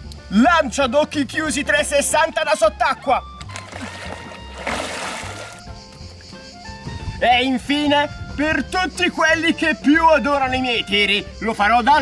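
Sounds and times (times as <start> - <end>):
water splashing in pool: 3.5 - 5.7.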